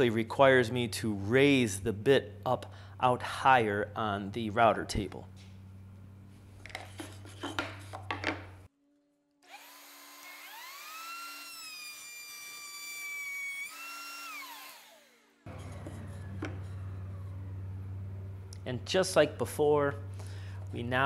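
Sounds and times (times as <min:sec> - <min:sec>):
router whining: 0:09.5 - 0:18.7.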